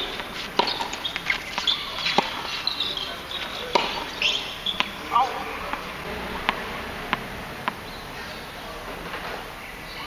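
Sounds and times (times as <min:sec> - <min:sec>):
tennis ball struck: 0:00.0 - 0:02.6, 0:03.2 - 0:08.4.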